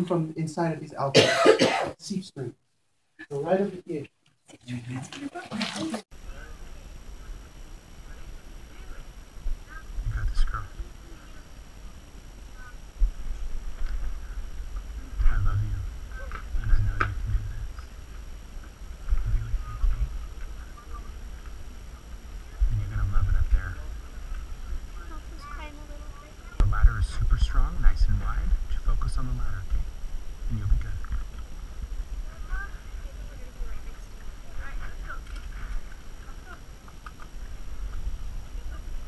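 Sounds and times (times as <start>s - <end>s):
faint indistinct voices: 5.2s - 28.5s
low rumble on microphone: 12.8s - 25.0s, 26.6s - 33.8s.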